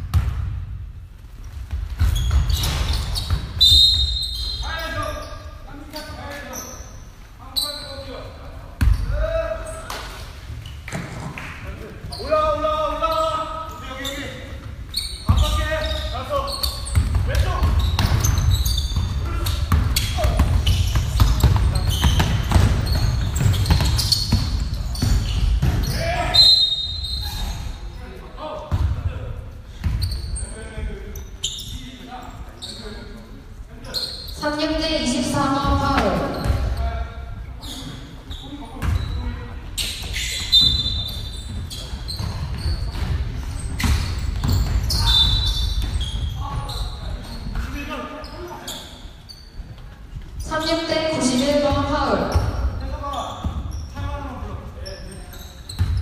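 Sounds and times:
basketball bouncing on court: 0.0 - 0.8, 1.7 - 3.6, 8.8 - 9.1, 16.8 - 26.0, 28.7 - 29.0, 35.4 - 36.8, 38.8 - 39.2, 40.7 - 46.8, 55.7 - 56.0
shoe squeaks: 2.0 - 10.0, 12.0 - 28.2, 29.9 - 33.2, 33.8 - 56.0.

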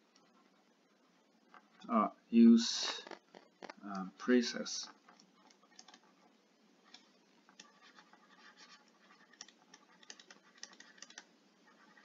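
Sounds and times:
stylus writing on tablet: 0.0 - 1.8, 4.6 - 12.0.

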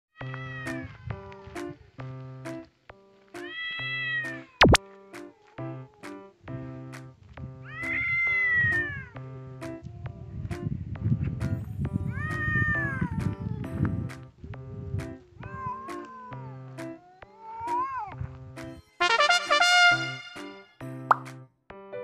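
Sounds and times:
bouncy background music: 0.2 - 22.0
cat yowling: 3.4 - 4.8, 7.6 - 9.2, 12.1 - 13.6, 14.8 - 18.2.

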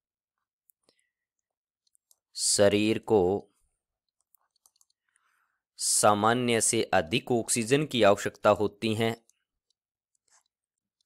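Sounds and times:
man's voice: 2.4 - 3.5, 5.8 - 9.3.

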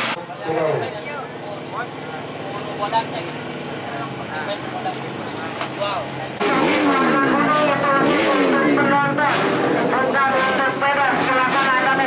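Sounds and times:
dirt bike engines revving: 0.0 - 12.0.

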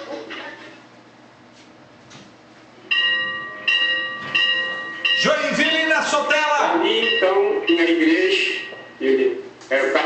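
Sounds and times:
church bell ringing: 2.9 - 9.3.

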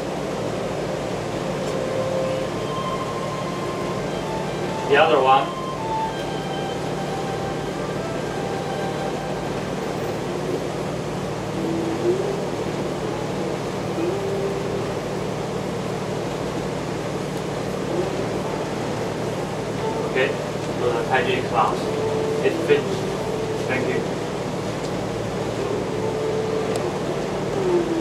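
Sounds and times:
ship machinery hum and rush: 0.0 - 28.0.

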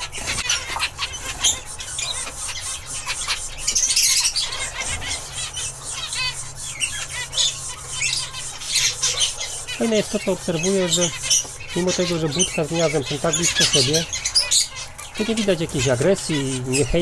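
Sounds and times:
finches calling: 0.0 - 17.0.

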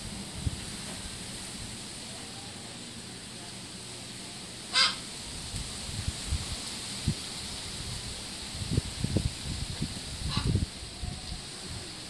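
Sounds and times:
wind rumbling on microphone: 0.0 - 1.9, 5.1 - 12.0
faint thin call: 4.7 - 5.0.

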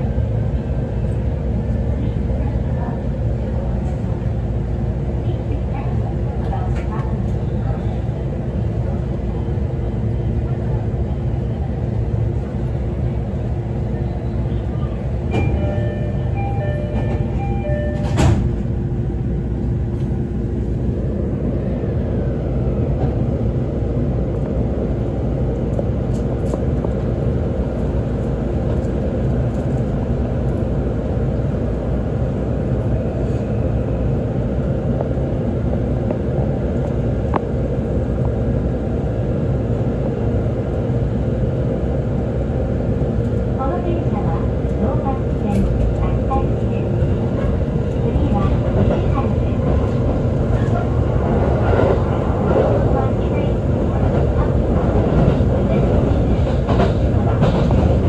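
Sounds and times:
train equipment hum: 0.0 - 58.0
train doors closing knock: 15.3 - 18.8.

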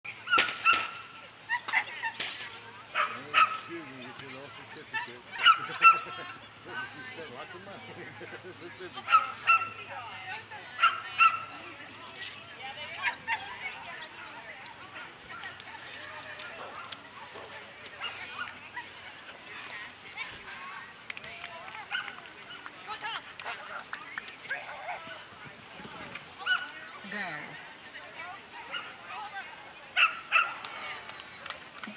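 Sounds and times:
dog barking high-pitched: 5.4 - 6.1.

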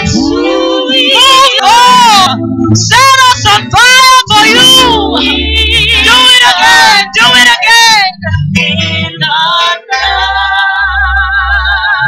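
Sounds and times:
women singing into microphones: 0.0 - 12.0.

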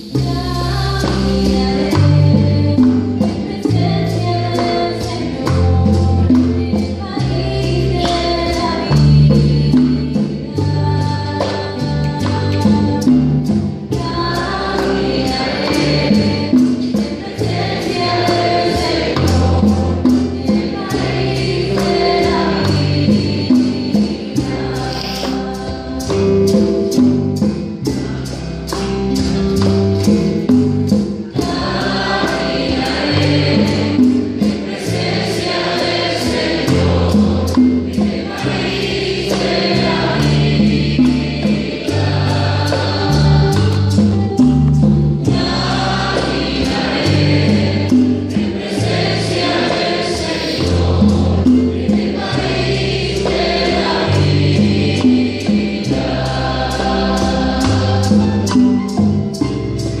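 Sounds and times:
voices singing together: 0.0 - 27.5, 30.4 - 59.4
instrumental accompaniment: 0.0 - 60.0
sharp percussion strikes: 0.0 - 60.0
woman singing a hymn: 0.1 - 26.2.

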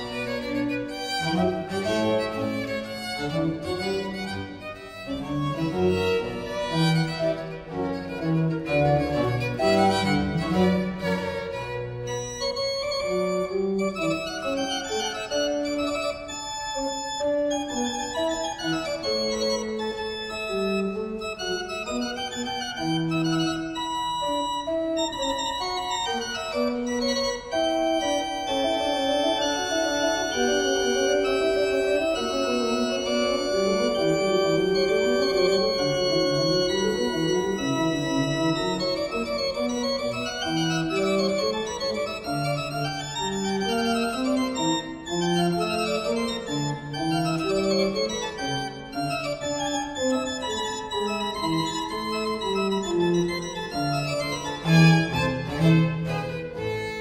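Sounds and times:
pipe organ: 0.0 - 57.0
string accompaniment: 0.0 - 57.0.

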